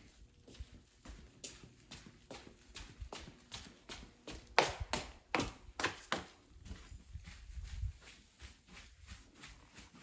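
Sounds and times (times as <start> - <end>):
footsteps in boots: 0.0 - 10.0.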